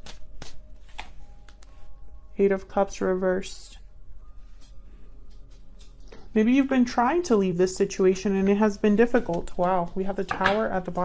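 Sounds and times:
cards clicking together: 0:00.0 - 0:01.7
cards being shuffled: 0:00.0 - 0:01.8
faint background music: 0:00.0 - 0:11.0.

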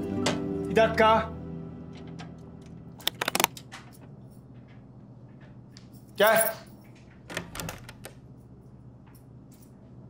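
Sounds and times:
door handle and latch clicking: 0:07.2 - 0:08.2.

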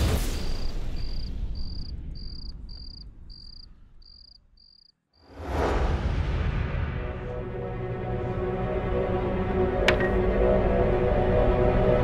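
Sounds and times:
cricket chirping: 0:00.0 - 0:05.0.

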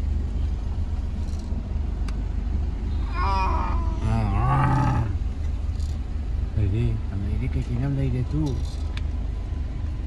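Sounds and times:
car engine hum from inside: 0:00.0 - 0:10.0
roar-like calls: 0:03.1 - 0:05.2.

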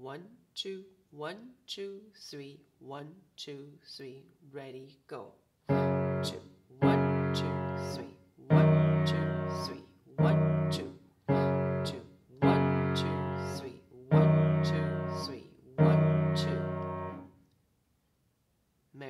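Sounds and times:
low piano chords: 0:05.7 - 0:17.3.

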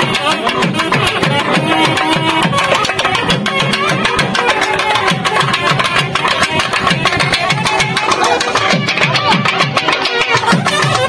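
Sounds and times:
fast steady drumbeat: 0:00.0 - 0:11.0
folk band playing dance music: 0:00.0 - 0:11.0
held melody: 0:00.0 - 0:11.0.

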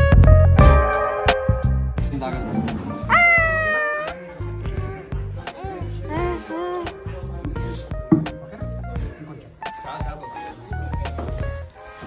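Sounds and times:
background music: 0:00.0 - 0:12.0
infant squealing: 0:03.0 - 0:06.8.

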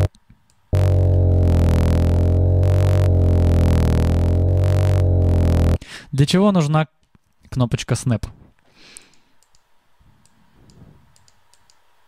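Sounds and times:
low synth drone with overtones: 0:00.8 - 0:05.8.

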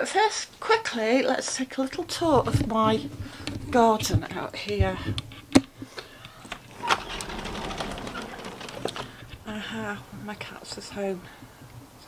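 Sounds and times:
low steady rattle: 0:01.9 - 0:10.9.

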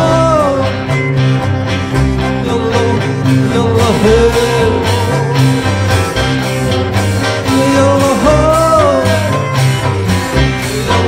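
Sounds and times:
double bass: 0:00.0 - 0:11.0
electric guitar: 0:00.0 - 0:11.0.

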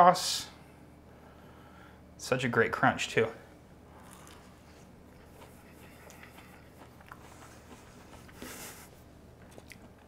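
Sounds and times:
low room hum: 0:00.0 - 0:10.0
crunchy chewing: 0:03.9 - 0:10.0.

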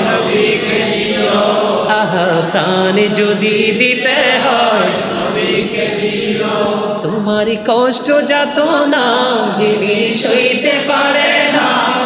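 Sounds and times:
man singing devotional song: 0:01.8 - 0:05.7, 0:06.7 - 0:11.1.

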